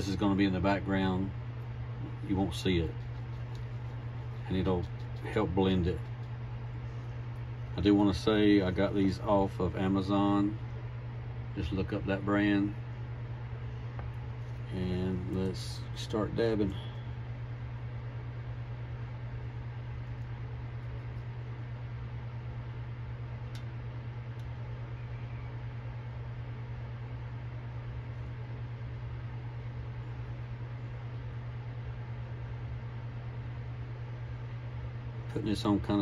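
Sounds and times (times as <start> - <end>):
fan hum and hiss: 0.0 - 36.0.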